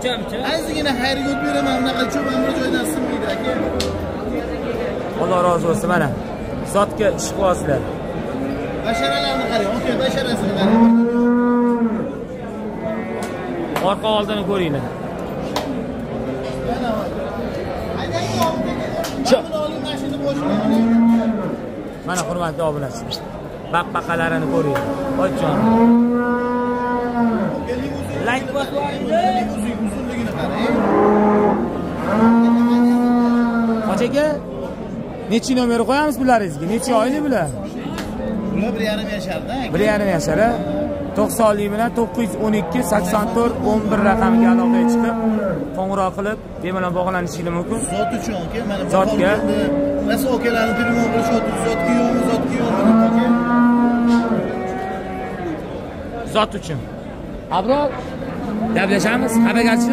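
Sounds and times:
cow mooing: 1.0s - 3.7s, 10.4s - 13.7s, 19.8s - 21.6s, 24.4s - 27.8s, 29.5s - 34.2s, 39.9s - 45.7s, 47.9s - 55.7s, 58.4s - 59.9s.

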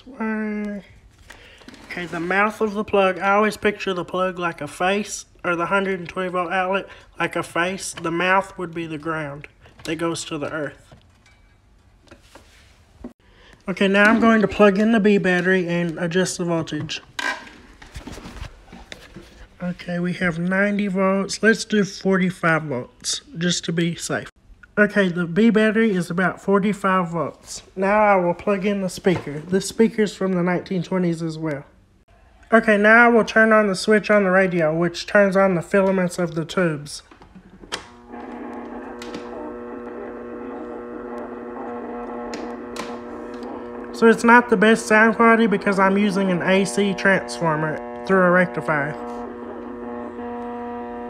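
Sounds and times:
short scrape: 1.4s - 2.6s
loudspeaker hum: 1.7s - 2.6s, 13.7s - 16.9s, 37.8s - 51.0s.

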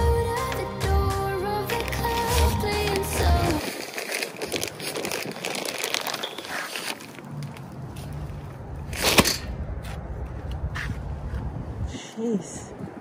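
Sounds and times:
plastic bags crinkling: 1.6s - 7.8s.

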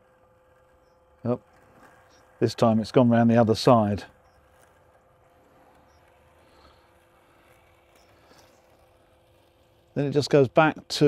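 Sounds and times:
robotic lawn mower hum: 0.0s - 11.0s.

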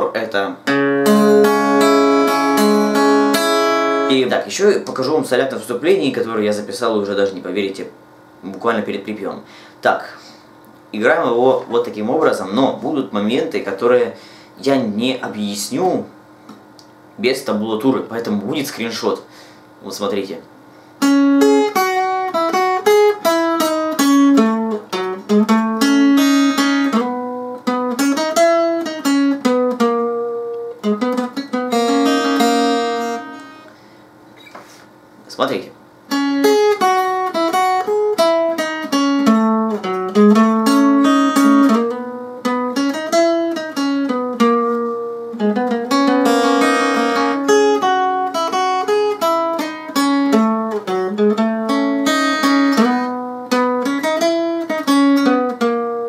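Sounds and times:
acoustic guitar melody: 0.0s - 5.4s, 21.0s - 34.9s, 36.1s - 56.0s.

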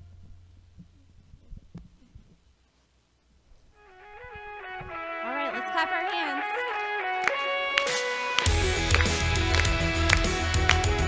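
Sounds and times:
faint low thumps: 3.4s - 5.2s.

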